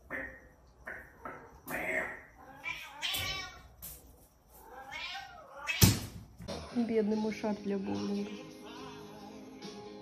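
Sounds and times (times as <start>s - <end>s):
cat meowing: 1.7s - 3.7s, 4.6s - 6.1s.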